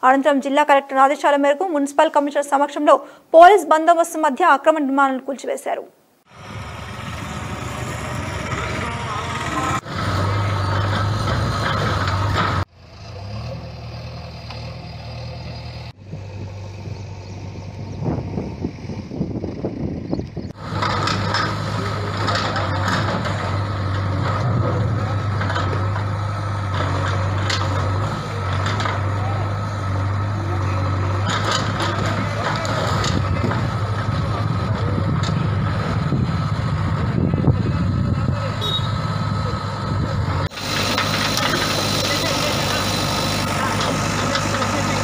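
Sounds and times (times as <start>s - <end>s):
diesel engine running: 6.3s - 45.0s.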